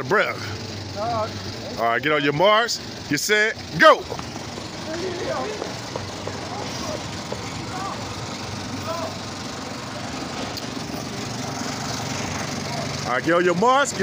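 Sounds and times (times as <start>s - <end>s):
idling vehicle engines: 0.0s - 14.0s
faint distant voices: 0.3s - 11.1s.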